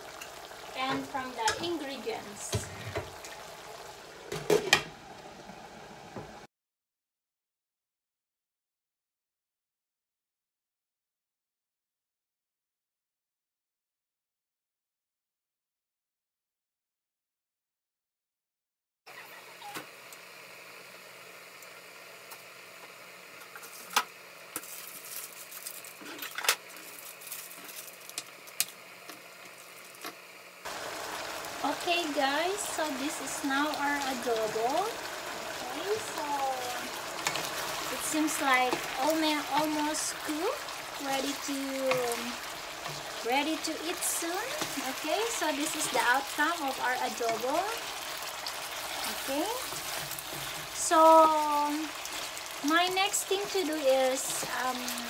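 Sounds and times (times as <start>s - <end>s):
chicken simmering: 0.0s - 6.4s, 30.6s - 55.0s.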